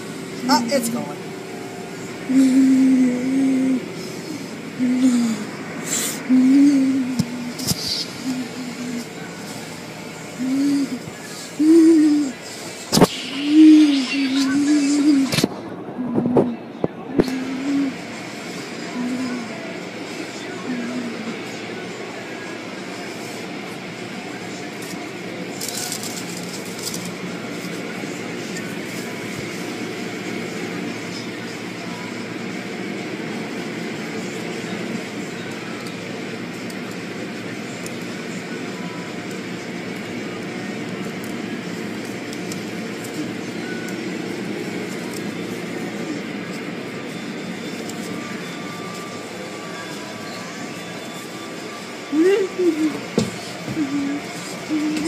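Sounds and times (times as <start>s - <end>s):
steady machine noise: 0.0s - 55.0s.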